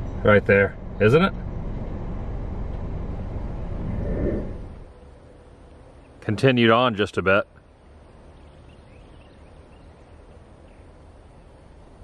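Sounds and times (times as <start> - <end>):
steady low hiss: 0.0 - 12.0
faint bird chirps: 8.1 - 11.6.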